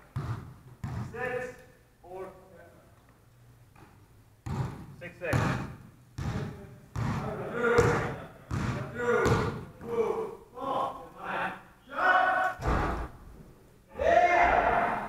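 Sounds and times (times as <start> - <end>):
basketball bouncing on hardwood floor: 0.1 - 1.1, 4.4 - 9.6.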